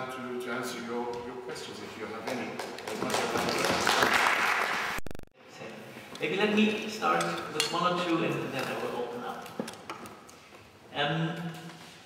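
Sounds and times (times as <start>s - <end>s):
audience applauding: 2.3s - 5.0s.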